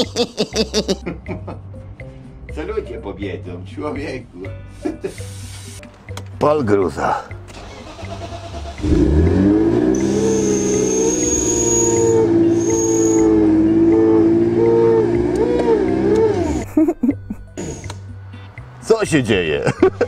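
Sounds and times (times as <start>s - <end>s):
car engine starting and running: 7.3s - 16.7s.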